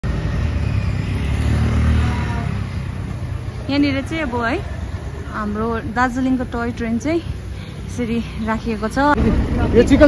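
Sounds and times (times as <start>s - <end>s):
traffic engine rumble: 0.0s - 10.0s.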